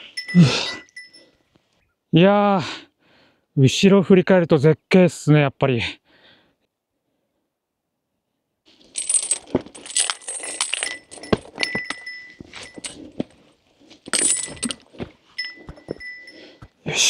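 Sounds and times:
metallic jingling: 0.0s - 1.4s, 8.8s - 16.6s
footsteps on rock: 8.8s - 16.8s.

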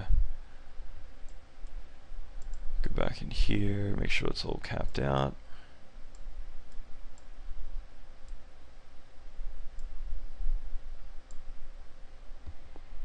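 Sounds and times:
computer mouse clicks: 2.4s - 2.6s, 6.1s - 7.4s, 11.2s - 11.5s.

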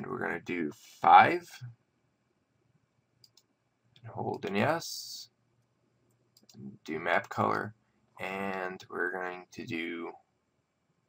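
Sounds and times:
faint computer mouse clicks: 3.2s - 3.5s.

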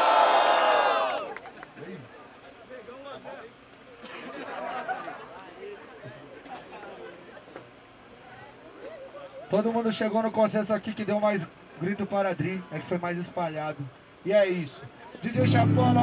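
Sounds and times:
crowd shouting and cheering: 0.0s - 1.5s
murmured chatter: 1.3s - 16.0s.

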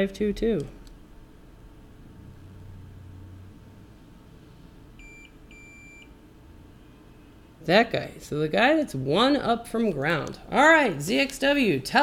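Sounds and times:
faint low hum: 0.0s - 12.0s
multimeter electronic beeps: 5.0s - 6.1s.

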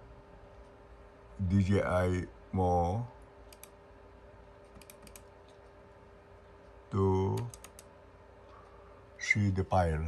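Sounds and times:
faint steady hum: 0.0s - 10.0s
computer mouse clicks: 3.4s - 3.8s, 4.6s - 5.8s, 7.3s - 7.9s.

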